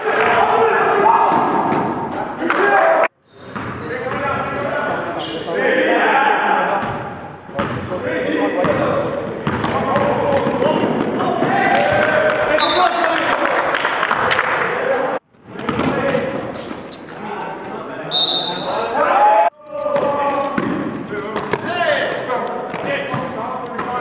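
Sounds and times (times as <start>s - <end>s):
players calling out: 0.0s - 3.2s, 3.8s - 13.8s, 14.4s - 24.0s.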